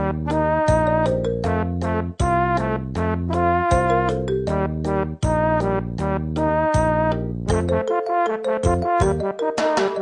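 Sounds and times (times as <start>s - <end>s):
light instrumental tune: 0.0s - 10.0s.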